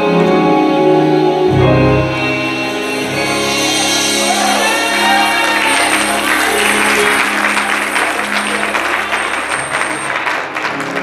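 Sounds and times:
song with held chord: 0:00.0 - 0:11.0
congregation applauding: 0:03.6 - 0:11.0.

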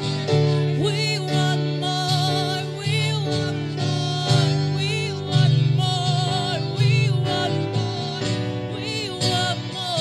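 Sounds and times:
acoustic guitar: 0:00.0 - 0:10.0
keyboard: 0:00.0 - 0:10.0.

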